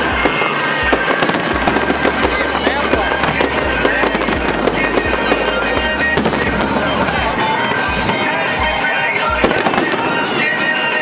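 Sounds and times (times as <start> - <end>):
fireworks bursting with deep booms: 0.0 - 10.8
music playing: 0.0 - 11.0.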